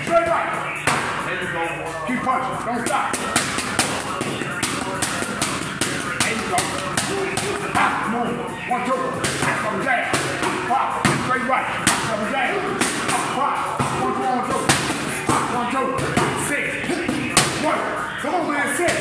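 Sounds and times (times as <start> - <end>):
boxing gloves hitting mitts: 2.9 - 7.9, 9.2 - 16.4.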